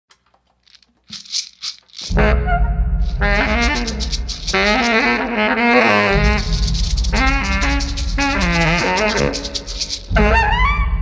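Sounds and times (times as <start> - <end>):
hissing rattling percussion strokes: 0.6 - 2.3, 3.0 - 10.2.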